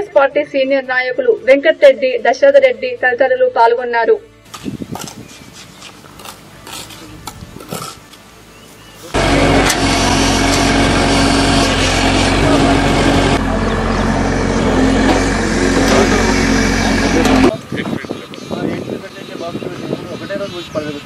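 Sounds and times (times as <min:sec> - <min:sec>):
engine-driven machine running: 0:09.1 - 0:17.6.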